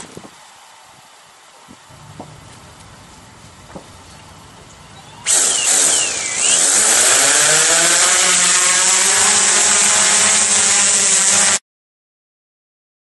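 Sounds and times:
quadcopter motors whining: 1.9 - 11.6.

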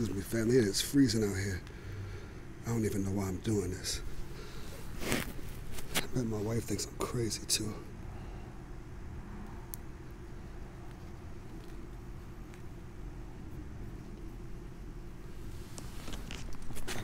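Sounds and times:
low outdoor rumble: 0.0 - 17.0.

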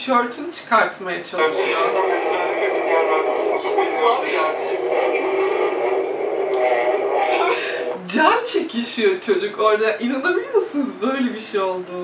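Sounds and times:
overlapping indistinct voices: 1.3 - 8.8.

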